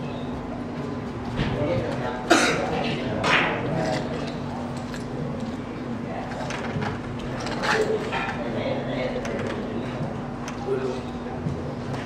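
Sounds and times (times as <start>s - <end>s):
steady low hum: 0.0s - 12.0s
loud cough: 2.3s - 2.8s.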